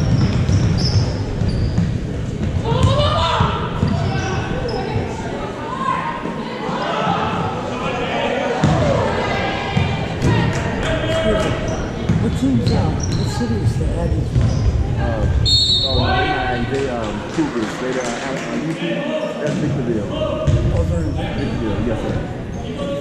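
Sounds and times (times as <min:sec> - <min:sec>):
people talking and calling out: 0:02.0 - 0:23.0.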